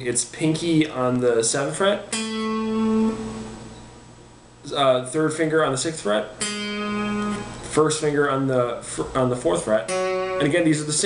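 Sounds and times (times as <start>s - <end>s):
plucked guitar note ringing: 2.1s - 3.8s, 6.4s - 7.7s, 9.8s - 10.8s.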